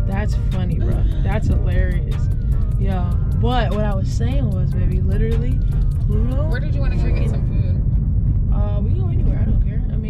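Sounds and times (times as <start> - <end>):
voices talking: 0.0 - 7.8
car cabin road and engine rumble: 0.0 - 10.0.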